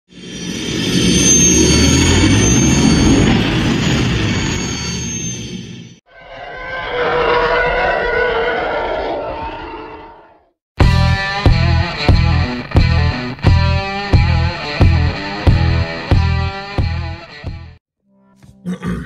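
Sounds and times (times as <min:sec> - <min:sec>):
rumbling whoosh with high whistle: 0:00.1 - 0:10.2.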